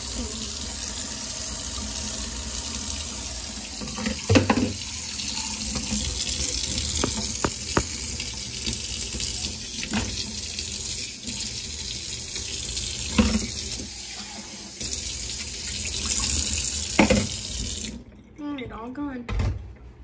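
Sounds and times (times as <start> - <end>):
tap water running into sink: 0.0 - 18.0
short knocks: 7.0 - 8.1.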